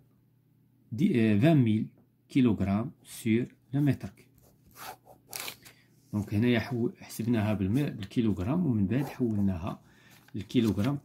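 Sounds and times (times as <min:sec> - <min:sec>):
ballpoint pen scratching on paper: 0:04.4 - 0:05.6, 0:08.9 - 0:09.5.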